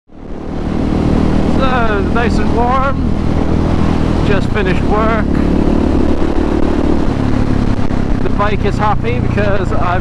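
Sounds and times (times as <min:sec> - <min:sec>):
motorcycle engine running: 0:00.1 - 0:10.0.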